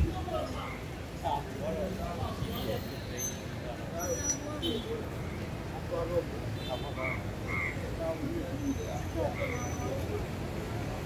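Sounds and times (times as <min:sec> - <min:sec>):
low traffic rumble: 0:00.0 - 0:11.0
people chattering: 0:00.0 - 0:11.0.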